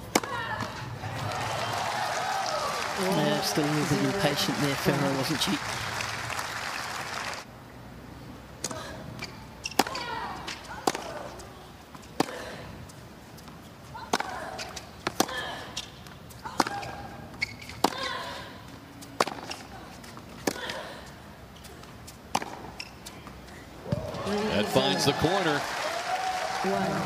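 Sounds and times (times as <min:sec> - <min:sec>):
tennis ball struck by rackets: 0:09.6 - 0:11.3, 0:14.1 - 0:15.4, 0:19.2 - 0:19.6, 0:22.3 - 0:22.7.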